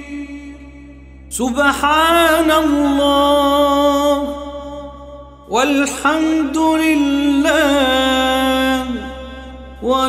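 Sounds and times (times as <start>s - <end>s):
person chanting melodically: 0.0s - 10.0s.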